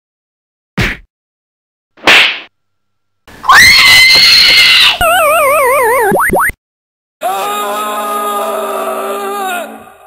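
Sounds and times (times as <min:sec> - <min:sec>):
loud held scream: 0:03.4 - 0:05.0, 0:07.2 - 0:10.0
warbling electronic tone: 0:05.0 - 0:06.6.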